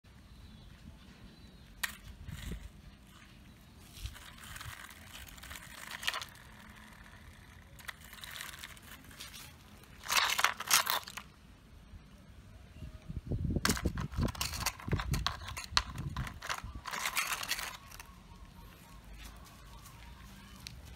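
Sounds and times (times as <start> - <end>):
toy excavators scraping gravel: 1.8 - 11.4, 13.7 - 20.9.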